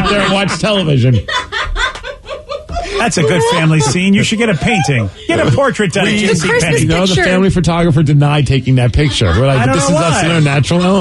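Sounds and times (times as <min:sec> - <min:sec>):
people laughing: 0:00.0 - 0:07.5, 0:08.8 - 0:11.0.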